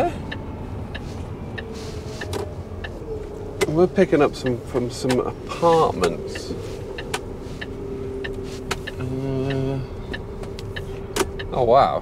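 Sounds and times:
lorry engine rumbling: 0:00.0 - 0:12.0.

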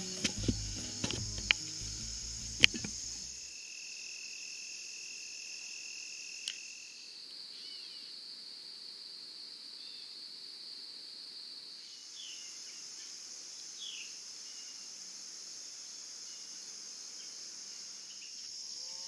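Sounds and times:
low insect trill: 0:00.0 - 0:10.4, 0:11.1 - 0:19.0
insects chorus: 0:00.0 - 0:19.0.

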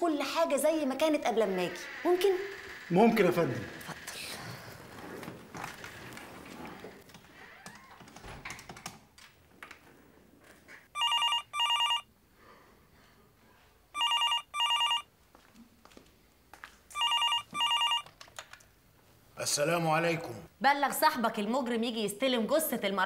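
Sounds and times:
telephone ringing: 0:11.0 - 0:12.1, 0:14.0 - 0:15.1, 0:17.0 - 0:18.1.

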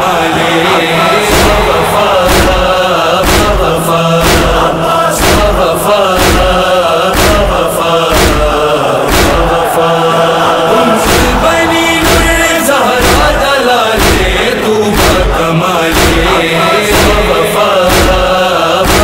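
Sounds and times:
heavy beat: 0:00.0 - 0:19.0
mourning chant singing: 0:00.0 - 0:19.0.

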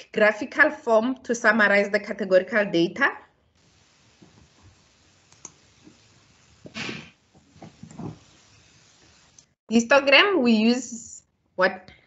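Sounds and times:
low hiss: 0:03.6 - 0:10.1
faint clicks: 0:05.3 - 0:06.0.

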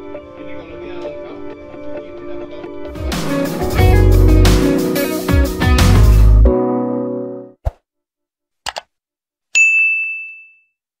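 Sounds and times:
music chord: 0:03.0 - 0:07.5.

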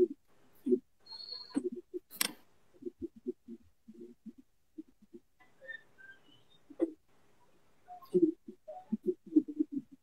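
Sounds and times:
garbled video call audio: 0:00.0 - 0:10.0
short whistle-like tones: 0:01.0 - 0:01.7.

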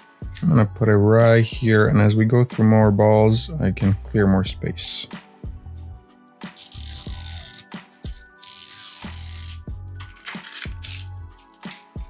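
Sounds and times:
background music: 0:00.0 - 0:12.0
plastic wrapper crinkling: 0:10.1 - 0:11.8.

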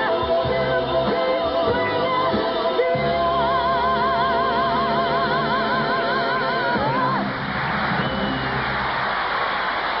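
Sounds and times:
audience applauding and cheering: 0:06.7 - 0:10.0.

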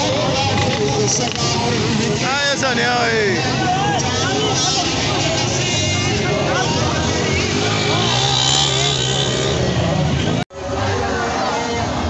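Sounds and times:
crowd voices: 0:00.0 - 0:12.0
small motorcycle engines running: 0:03.6 - 0:10.4.

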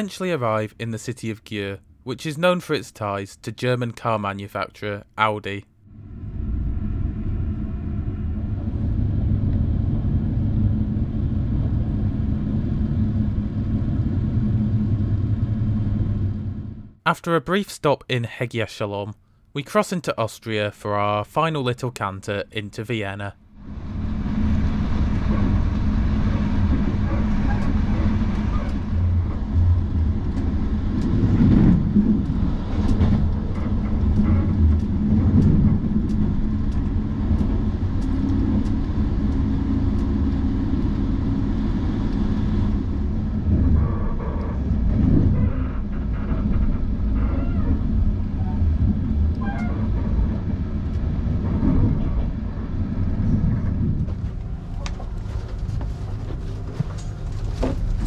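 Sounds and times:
train wheels rumbling on rail: 0:23.6 - 0:58.0.

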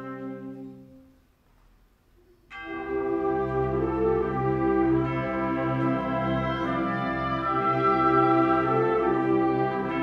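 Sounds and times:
wind band playing chords: 0:00.0 - 0:01.2, 0:02.5 - 0:10.0.

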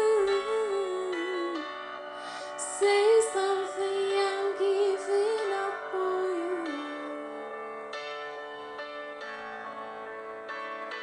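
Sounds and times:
person singing slow ballad: 0:00.0 - 0:07.8
soft instrumental accompaniment: 0:00.0 - 0:11.0.

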